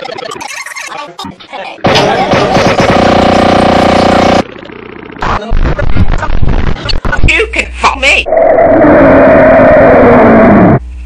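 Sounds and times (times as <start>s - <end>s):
loud buzzing tone: 1.9s - 5.4s.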